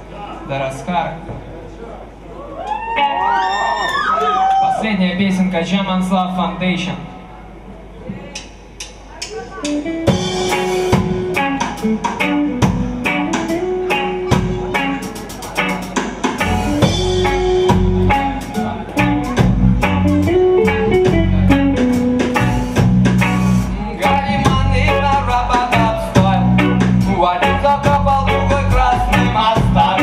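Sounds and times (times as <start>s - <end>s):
live reggae band playing: 8.4s - 30.0s.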